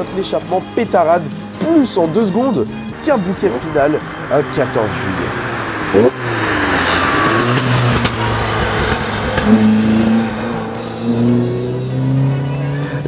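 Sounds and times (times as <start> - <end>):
four-cylinder engine revving hard: 0.6 - 13.0
exhaust popping cracks: 2.5 - 11.4.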